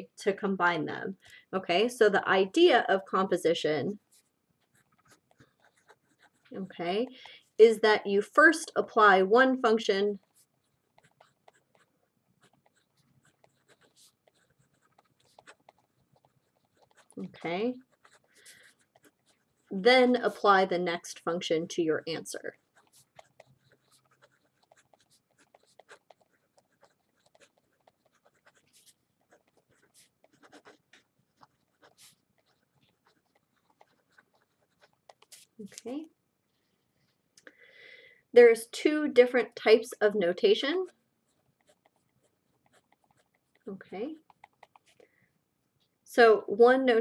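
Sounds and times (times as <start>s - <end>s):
pen scratching on paper: 4.0s - 7.8s, 8.4s - 35.9s, 40.8s - 45.0s.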